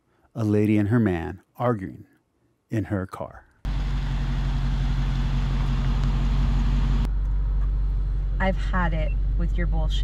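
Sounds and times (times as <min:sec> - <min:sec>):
car engine idling: 0:03.7 - 0:08.5.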